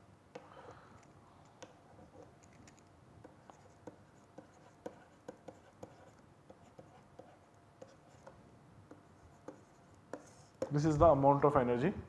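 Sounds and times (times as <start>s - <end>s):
stylus tapping on tablet: 3.2s - 10.8s.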